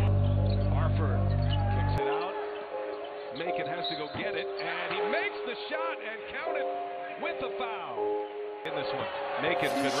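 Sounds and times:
crowd noise: 8.7 - 10.0.

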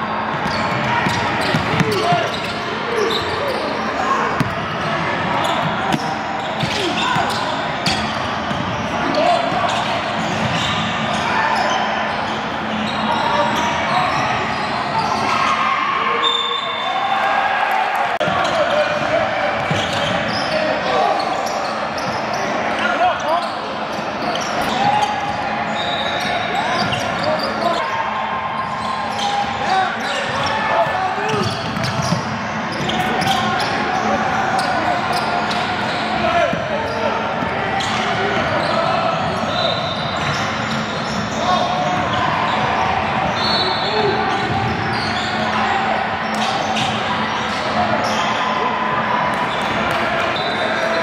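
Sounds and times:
hubbub of voices: 0.0 - 51.0.

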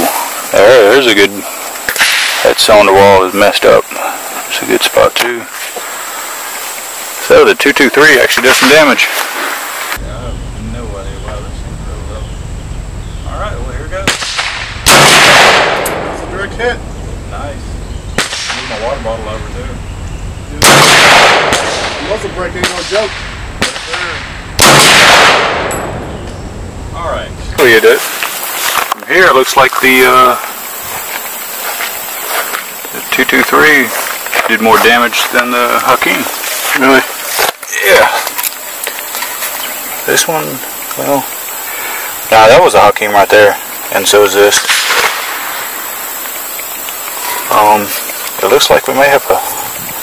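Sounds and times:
outdoor background hiss: 0.0 - 50.0
rifle shot: 1.9 - 2.5, 14.0 - 16.2, 18.2 - 18.8, 20.6 - 26.0, 44.6 - 45.6.

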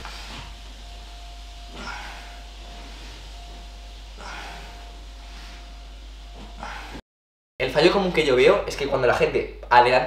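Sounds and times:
faint electrical hum: 0.0 - 7.0.

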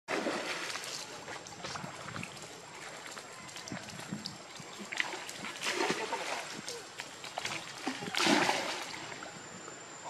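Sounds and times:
water splashing: 0.1 - 9.4.

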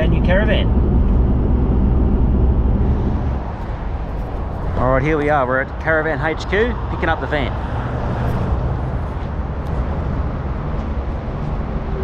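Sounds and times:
engine and road drone in car cabin: 0.0 - 12.0.

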